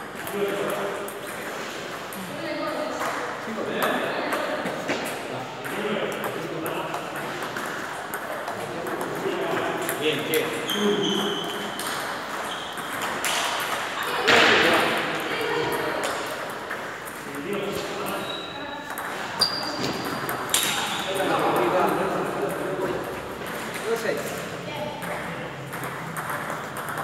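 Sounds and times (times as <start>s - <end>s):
balls bouncing on tables: 0.0s - 27.0s
table tennis balls clicking: 3.8s - 18.2s, 18.8s - 27.0s.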